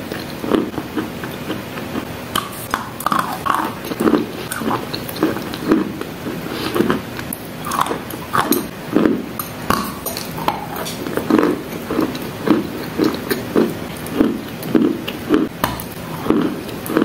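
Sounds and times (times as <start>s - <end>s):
crunchy wet chewing: 0.0s - 17.0s
wet mouth clicks: 1.2s - 5.8s.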